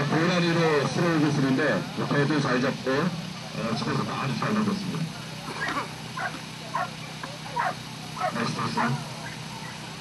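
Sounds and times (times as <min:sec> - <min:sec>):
dog yipping and barking: 0:05.6 - 0:07.0, 0:07.6 - 0:09.8.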